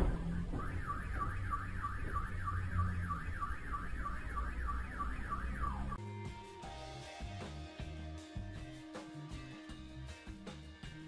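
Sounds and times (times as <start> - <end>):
low vehicle rumble: 0.0 - 6.0
car alarm whooping: 0.2 - 6.0.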